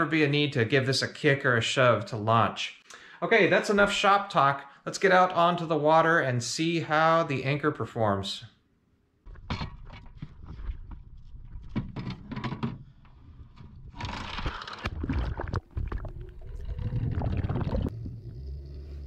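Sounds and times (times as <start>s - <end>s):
clicks and knocks: 11.6s - 15.9s
water bubbling and rushing: 14.8s - 18.6s
low rumble: 15.8s - 19.0s.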